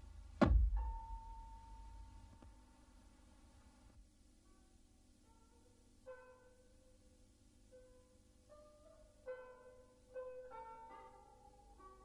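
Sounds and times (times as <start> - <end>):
faint instrumental music: 0.0 - 12.0.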